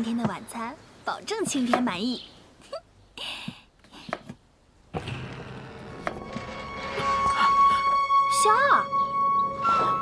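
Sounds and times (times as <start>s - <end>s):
woman talking: 8.3s - 8.9s.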